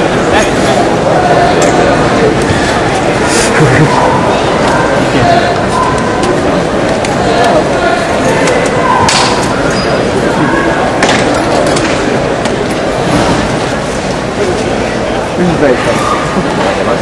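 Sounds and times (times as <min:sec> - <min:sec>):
indistinct crowd chatter: 0:00.0 - 0:17.0.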